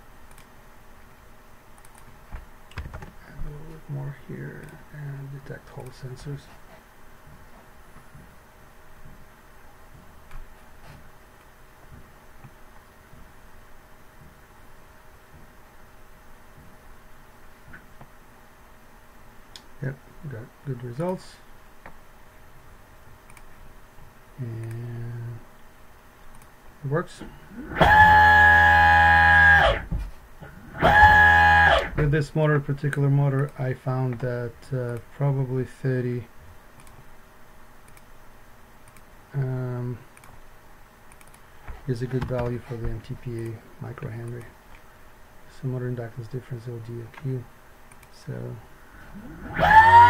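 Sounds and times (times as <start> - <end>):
electric motor whine: 27.6 - 29.9, 30.7 - 32.0, 49.2 - 50.0.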